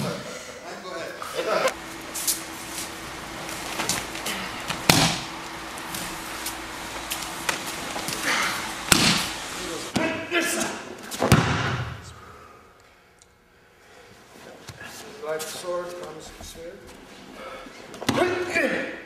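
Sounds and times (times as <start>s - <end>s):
bodies thudding on mat: 8.8s - 9.3s
slaps and rustling: 8.9s - 9.3s.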